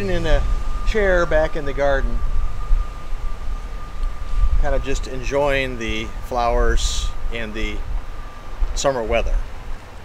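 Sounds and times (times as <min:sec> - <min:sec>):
faint high whine: 0:00.0 - 0:10.0
low outdoor rumble: 0:00.0 - 0:10.0.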